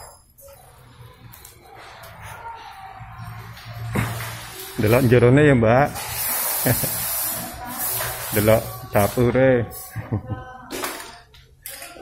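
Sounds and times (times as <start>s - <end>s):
faint background voices: 0.4s - 12.0s.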